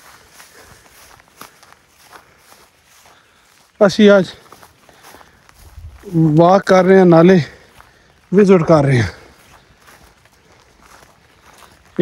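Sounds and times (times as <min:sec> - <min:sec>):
footsteps on dirt path: 0:00.0 - 0:12.0
man speaking loudly: 0:03.8 - 0:04.5, 0:06.0 - 0:07.7, 0:08.3 - 0:09.3.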